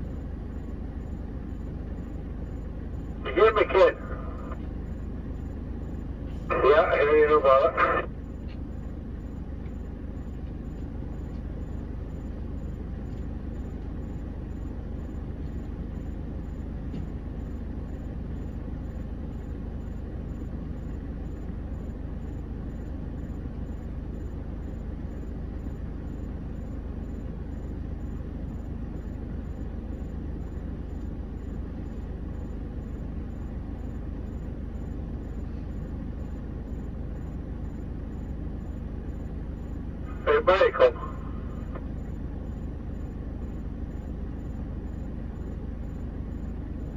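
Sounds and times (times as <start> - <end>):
diesel truck engine idling: 0.0 - 46.9.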